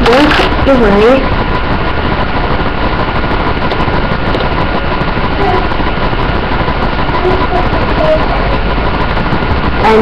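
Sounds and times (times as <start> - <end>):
loud whirring motor with whine: 0.0 - 10.0.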